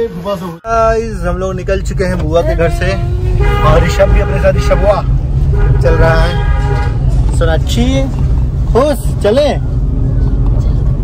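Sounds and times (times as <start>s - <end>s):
car cabin rumble while driving: 0.0s - 11.0s.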